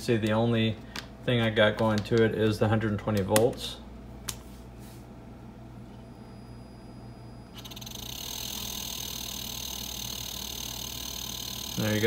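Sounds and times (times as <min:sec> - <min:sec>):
refrigerator compressor whine and hum: 0:00.0 - 0:12.0.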